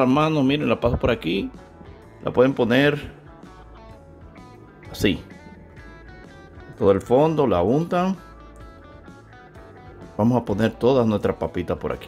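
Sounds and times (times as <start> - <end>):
quiet plucked background music: 0.0 - 12.0.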